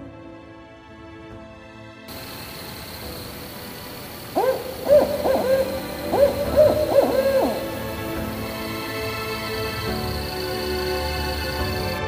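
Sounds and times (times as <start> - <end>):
owl hooting: 2.1 - 12.0.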